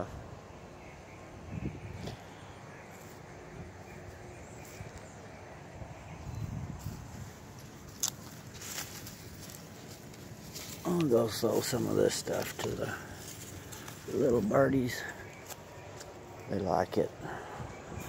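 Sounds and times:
soft footsteps on mulch: 0:02.0 - 0:05.4, 0:06.1 - 0:17.0.

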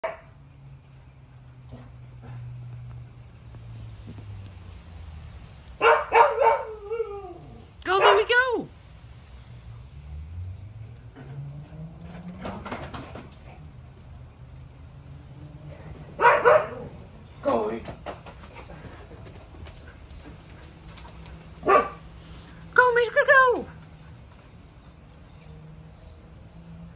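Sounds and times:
dog barking sharply: 0:05.8 - 0:06.7, 0:07.9 - 0:08.3, 0:16.2 - 0:16.9, 0:21.6 - 0:22.0.

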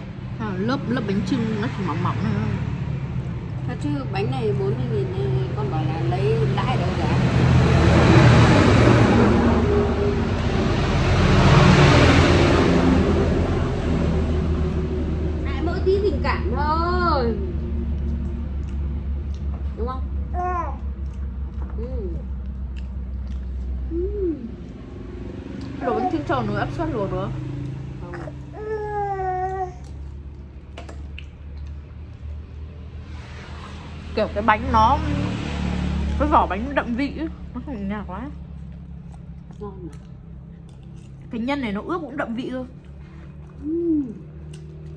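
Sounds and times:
road noise rushing: 0:00.0 - 0:43.6
low background hum: 0:00.0 - 0:44.9
vehicle engine running: 0:00.0 - 0:44.9
squishy chewing: 0:17.7 - 0:20.2, 0:20.8 - 0:23.9, 0:38.6 - 0:41.4, 0:42.8 - 0:44.9.

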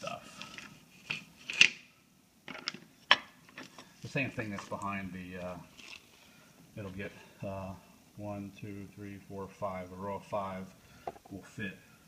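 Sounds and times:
hard objects clicking and knocking: 0:02.5 - 0:03.9, 0:11.0 - 0:11.4.

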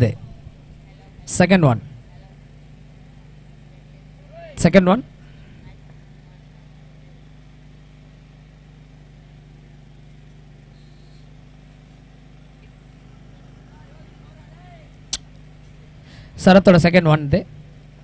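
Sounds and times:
low hum: 0:00.0 - 0:02.4.

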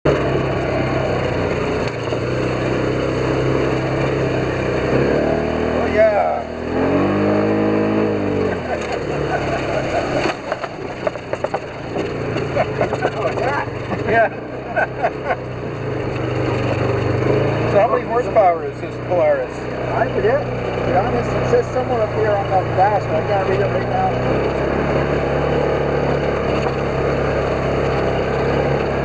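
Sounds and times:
off-road vehicle engine revving: 0:00.0 - 0:29.0
knocks and rattles: 0:08.7 - 0:14.4.

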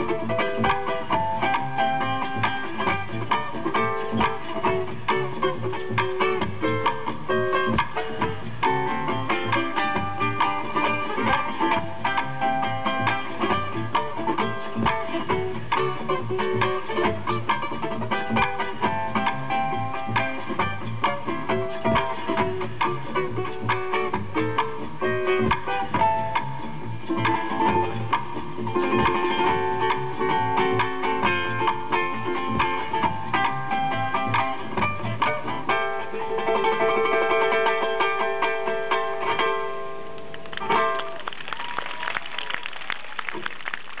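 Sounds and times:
solo ukulele: 0:00.0 - 0:41.4
audience applause: 0:40.2 - 0:44.0.

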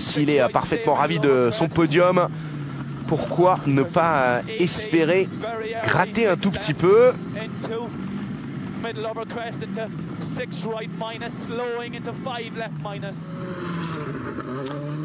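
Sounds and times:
rally car engine running: 0:00.0 - 0:15.0
rushing gravelly noise: 0:00.0 - 0:15.0.

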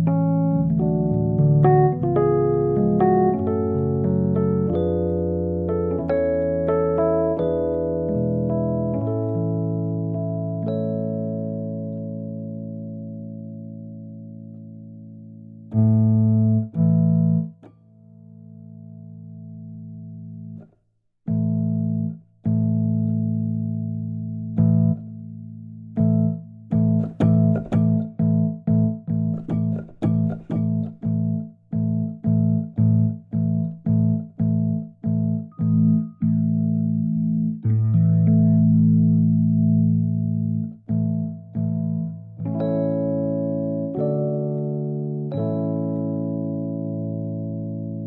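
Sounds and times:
electric piano chords: 0:00.0 - 0:48.0.

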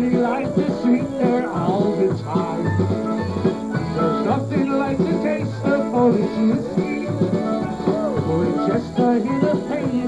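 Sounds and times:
bouncing bass line: 0:00.0 - 0:10.0
concertina melody: 0:02.5 - 0:09.9.

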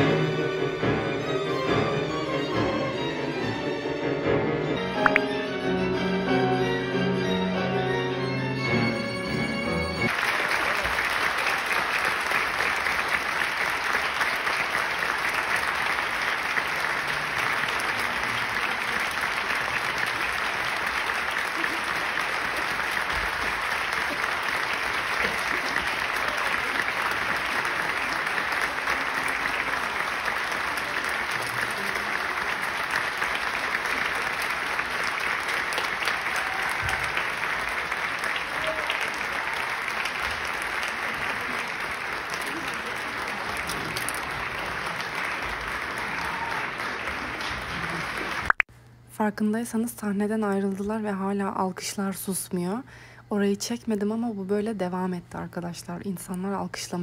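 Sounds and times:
audience applauding: 0:09.8 - 0:48.7.

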